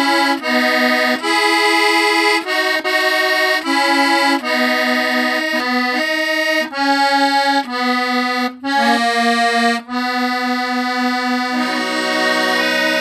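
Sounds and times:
accordion playing chords: 0.0 - 13.0.

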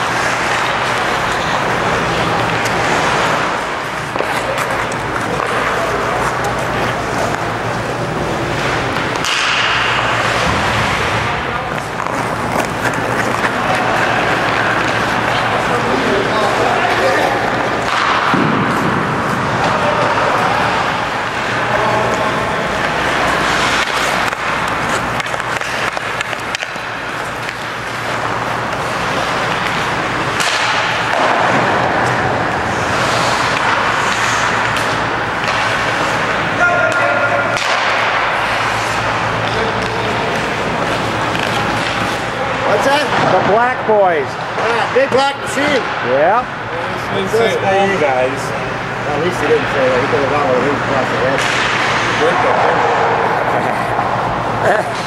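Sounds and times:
skate blades scraping ice: 0.0 - 43.1
hockey sticks and puck clacking: 0.0 - 47.1, 47.9 - 55.0
steady low hum: 0.0 - 55.0.

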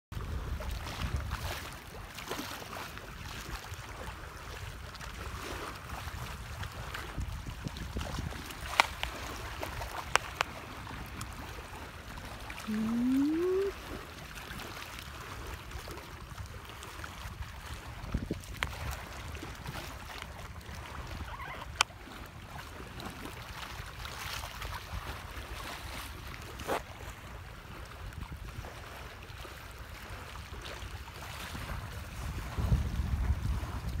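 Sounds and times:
wind noise on microphone: 0.1 - 1.8, 3.4 - 11.6, 12.6 - 13.9, 16.3 - 23.2, 27.9 - 29.5, 30.9 - 34.0.

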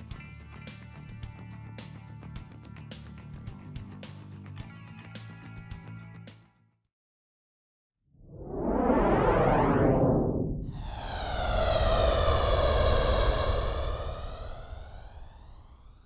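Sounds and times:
deep rumble: 8.2 - 16.0
whoosh: 8.2 - 16.0.

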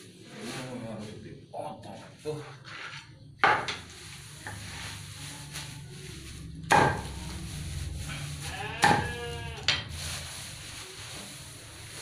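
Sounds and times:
sheep bleating: 8.1 - 9.7.

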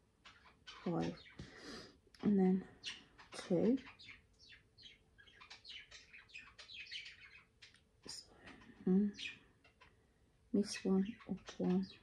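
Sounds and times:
pet bird chirping: 0.1 - 10.0, 10.6 - 12.0.

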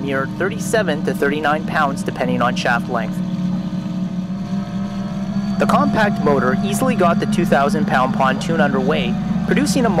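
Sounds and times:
electric motor humming: 0.0 - 10.0
propeller churning water: 0.0 - 10.0.

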